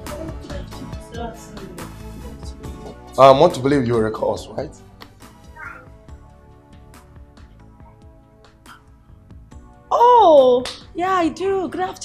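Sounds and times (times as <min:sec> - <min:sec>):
soft film music: 0:00.0 - 0:12.0.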